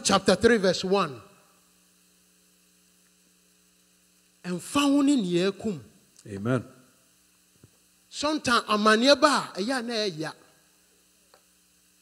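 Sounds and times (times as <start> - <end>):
man speaking with room echo: 0.0 - 1.6, 4.4 - 7.0, 8.1 - 10.6
faint electrical mains hum: 0.0 - 12.0.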